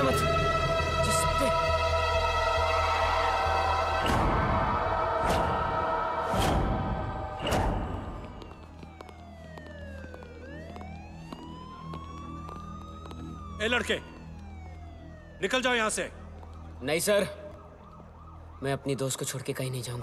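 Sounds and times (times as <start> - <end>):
dramatic film score music: 0.0 - 17.6
siren wailing: 0.0 - 20.0.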